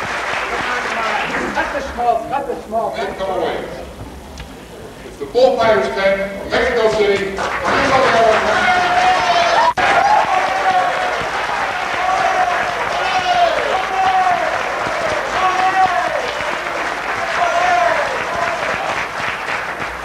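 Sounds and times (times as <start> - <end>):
audience applauding: 0.0 - 2.4, 6.5 - 20.0.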